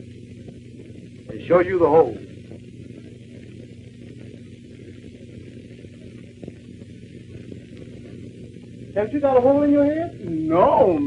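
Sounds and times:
film soundtrack hum and hiss: 0.0 - 11.0
man speaking: 9.0 - 11.0.

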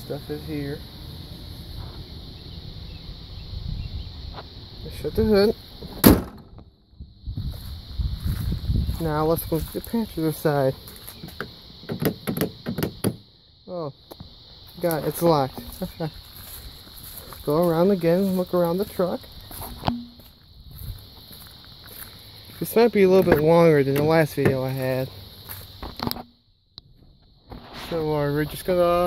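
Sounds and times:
high-pitched insect drone: 0.0 - 29.0
car hood slamming shut: 5.9 - 6.5
faint footsteps on concrete: 7.4 - 9.8, 14.6 - 18.4, 19.2 - 22.7, 25.4 - 26.0.

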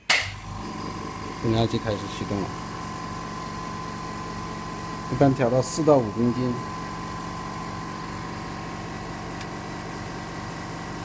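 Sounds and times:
air compressor humming with whine: 0.0 - 11.0.

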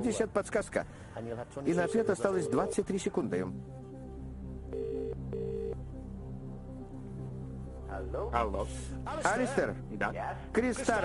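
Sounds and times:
low background music: 0.0 - 11.0
telephone ringing tone: 1.7 - 2.8, 4.7 - 5.8.

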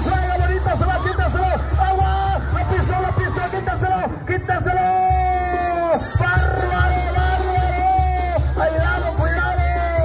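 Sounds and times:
brass band music: 0.0 - 10.0.

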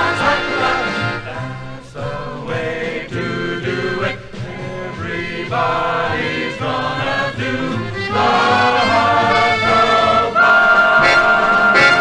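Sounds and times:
band accompaniment: 0.0 - 12.0
vocal choir singing held chords: 0.0 - 12.0.

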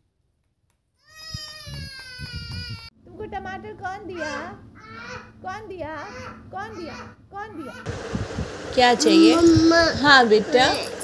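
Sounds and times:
child wailing: 1.0 - 2.9, 4.2 - 5.3.

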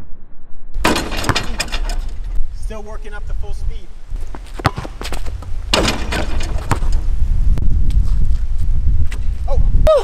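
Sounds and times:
wind rumble on microphone: 0.0 - 10.0
basketball hoop rattling: 0.8 - 2.4, 4.5 - 7.2
footsteps and ball thuds: 0.8 - 2.4, 4.1 - 9.4.

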